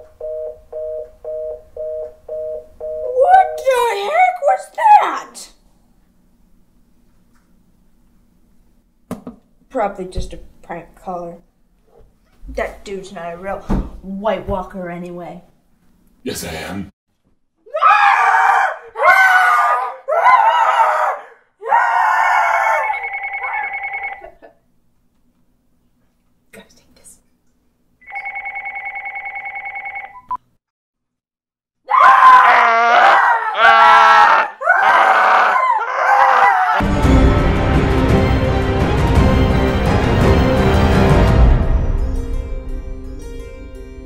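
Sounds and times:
telephone busy tone beeps: 0.2s - 3.7s, 23.0s - 24.2s, 28.0s - 30.4s
people screaming: 17.7s - 23.7s, 31.9s - 37.2s
telephone ringing trill: 22.9s - 24.3s, 28.0s - 30.3s.

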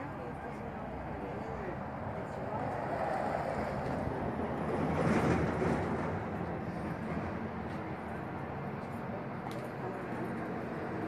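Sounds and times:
faint voices: 0.0s - 5.0s
vehicle passing on road: 0.0s - 11.0s.

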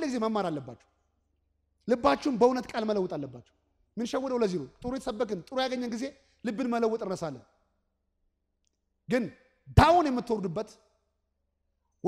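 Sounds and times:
man preaching through microphone: 0.0s - 0.9s, 1.8s - 7.6s, 9.1s - 10.9s.

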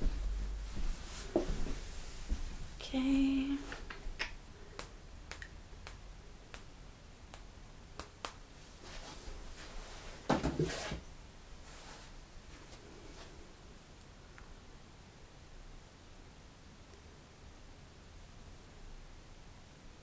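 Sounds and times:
rustling: 0.0s - 2.8s, 8.7s - 13.4s.

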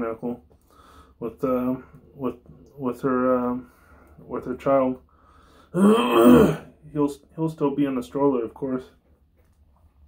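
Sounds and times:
man's throaty non-speech sound: 5.7s - 6.7s.

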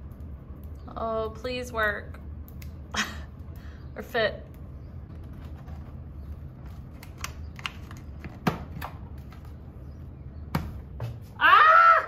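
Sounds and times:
low steady hum: 0.0s - 12.0s
person exclaiming: 11.4s - 12.0s.

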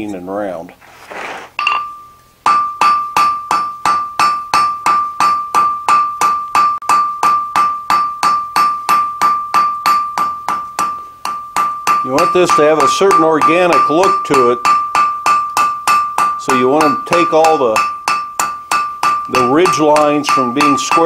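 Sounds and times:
hammer striking steel on anvil: 1.6s - 21.0s.

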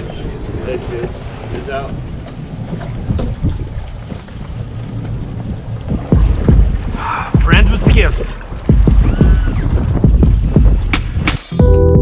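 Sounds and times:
wind buffeting microphone: 0.0s - 11.3s.

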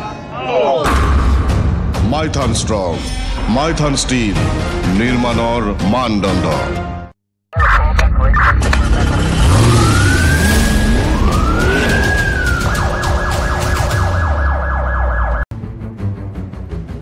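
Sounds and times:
emergency siren wailing and yelping: 9.4s - 15.5s.

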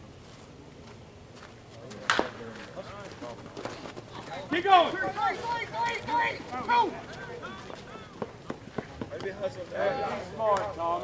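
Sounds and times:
bat striking ball: 2.0s - 2.5s
players calling out: 2.1s - 11.0s.

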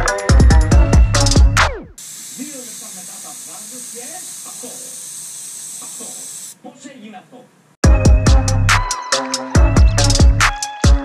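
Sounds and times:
electronic music with heavy beat: 0.0s - 2.0s, 7.8s - 11.0s
airbrush spraying hiss: 1.9s - 6.6s.

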